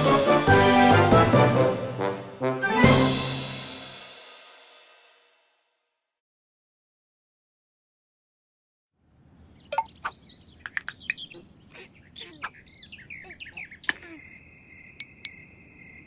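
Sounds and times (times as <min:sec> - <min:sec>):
bird chirps and tweets: 0:09.1 - 0:16.0
cricket trill: 0:13.3 - 0:16.0.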